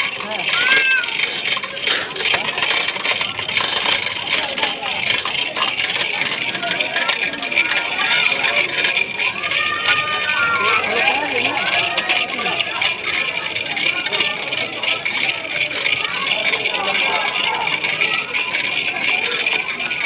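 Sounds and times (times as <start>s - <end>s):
crowd talking and calling out: 0.0s - 20.0s
raised voices: 4.1s - 20.0s.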